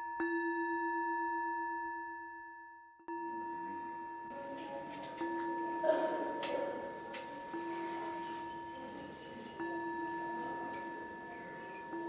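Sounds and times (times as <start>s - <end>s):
singing bowl ringing: 3.1s - 12.0s.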